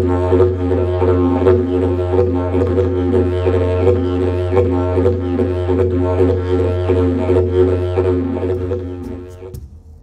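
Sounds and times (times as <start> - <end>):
didgeridoo drone: 0.0 - 9.9.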